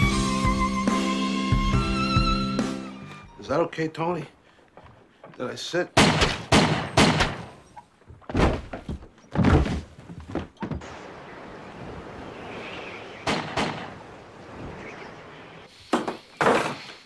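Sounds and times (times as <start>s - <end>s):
pistol shots: 6.0s - 7.6s, 13.3s - 13.9s
choppy water: 10.8s - 15.6s.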